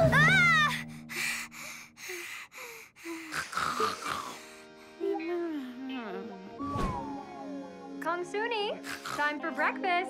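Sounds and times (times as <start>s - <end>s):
girl panting: 0.2s - 6.2s
soft background music: 3.5s - 10.0s.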